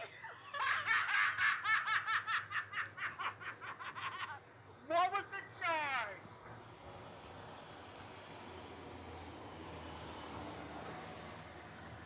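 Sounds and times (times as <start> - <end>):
person laughing: 0.0 - 4.5.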